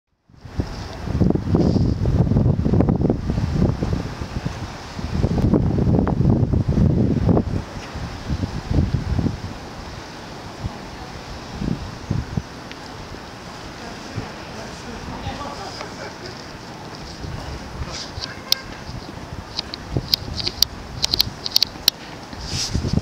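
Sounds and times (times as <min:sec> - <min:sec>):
wind buffeting microphone: 0:00.2 - 0:23.0.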